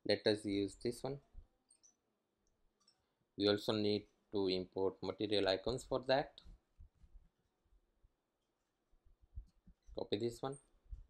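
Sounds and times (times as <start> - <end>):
person speaking: 0.0 - 1.3, 3.4 - 6.6, 9.9 - 10.7.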